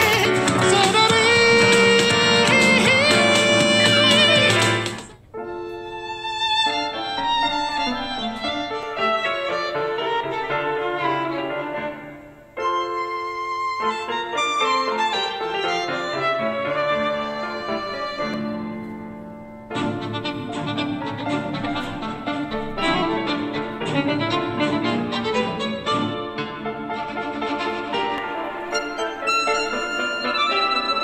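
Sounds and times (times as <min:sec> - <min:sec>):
violin and piano music: 0:00.0 - 0:31.0.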